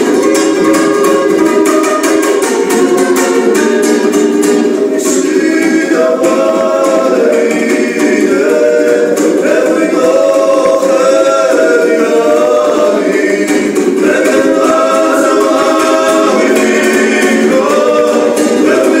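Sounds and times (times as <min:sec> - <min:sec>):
lute strummed: 0:00.0 - 0:19.0
men singing in harmony: 0:04.9 - 0:19.0.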